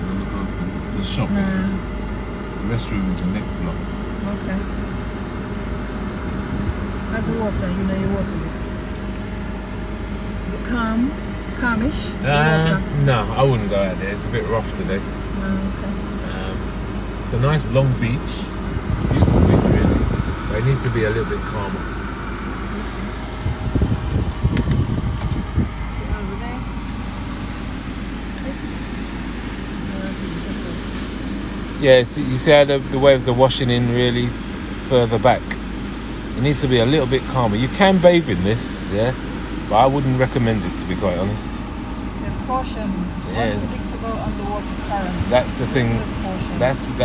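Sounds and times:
car engine rumble: 0.0 - 47.0
faint steady hum: 0.0 - 47.0.

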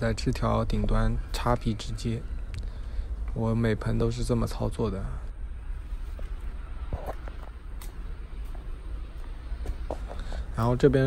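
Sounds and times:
steady low rumble: 0.0 - 11.0
footsteps on concrete: 6.1 - 10.6.

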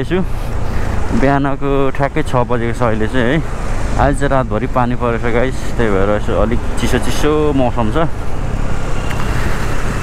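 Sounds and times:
person talking: 1.0 - 8.2.

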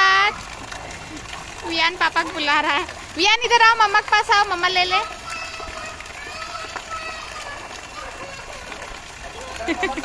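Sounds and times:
water jet splashing into pool: 0.0 - 10.0.

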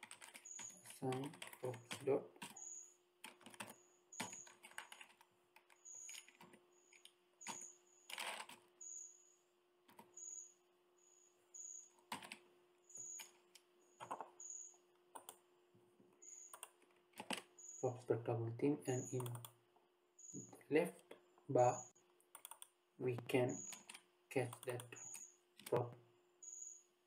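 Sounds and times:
faint keyboard typing: 0.0 - 8.9, 9.8 - 10.4, 11.5 - 18.0, 18.9 - 19.6, 20.3 - 26.6.

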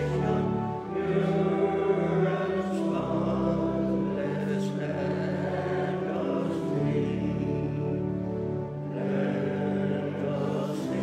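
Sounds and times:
pipe organ sustained chords: 0.0 - 11.0.

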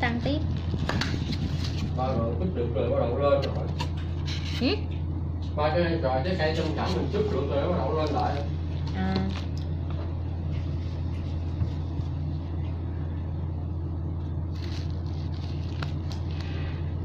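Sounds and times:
electric fan humming: 0.0 - 17.0.

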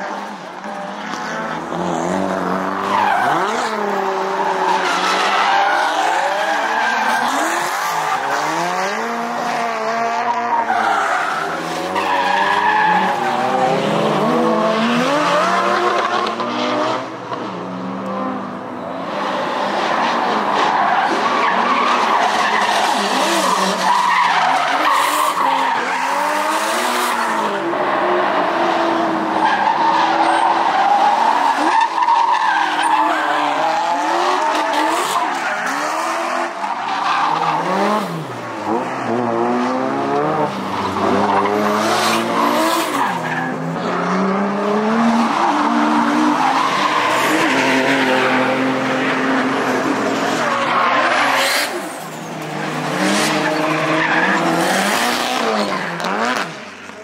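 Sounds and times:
car engines revving: 0.0 - 57.0
tyres skidding and squealing: 0.0 - 57.0.

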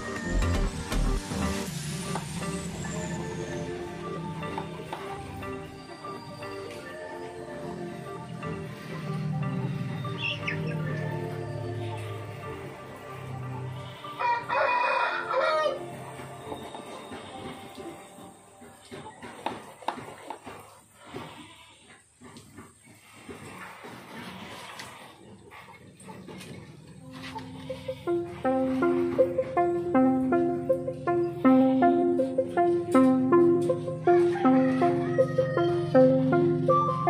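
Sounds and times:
rooster crowing: 14.0 - 16.0, 34.0 - 36.1
plucked melody: 28.2 - 37.0.

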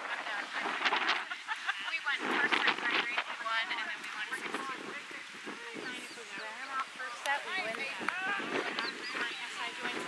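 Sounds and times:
distant people talking and calling: 0.0 - 10.0.

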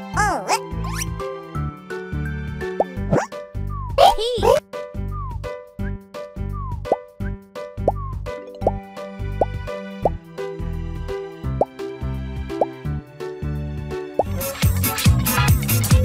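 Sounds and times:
bouncy children's music: 0.0 - 10.4, 11.1 - 16.0
cartoon plop bloops: 2.8 - 3.3, 4.0 - 4.6.

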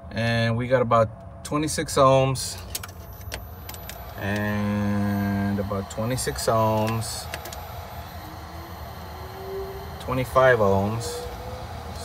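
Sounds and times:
hvac equipment humming: 0.0 - 12.0.

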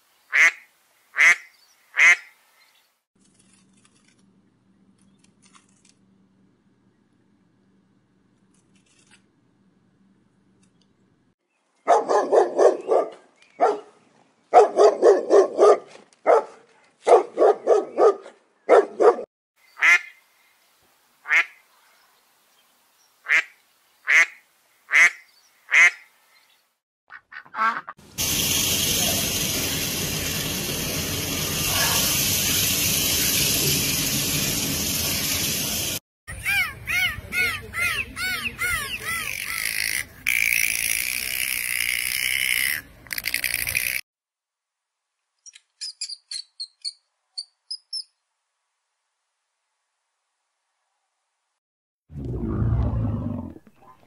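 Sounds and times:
thin high chirps: 45.5 - 48.2.

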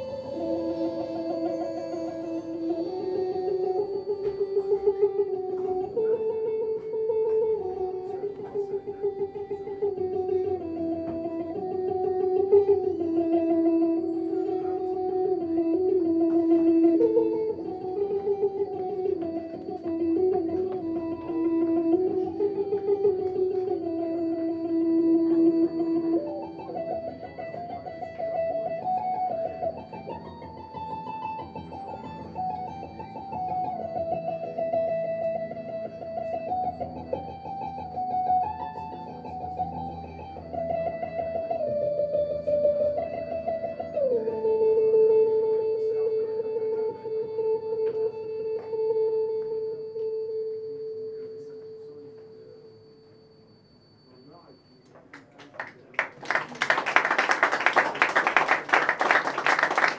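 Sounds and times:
electric guitar sustained notes: 0.0 - 59.9.

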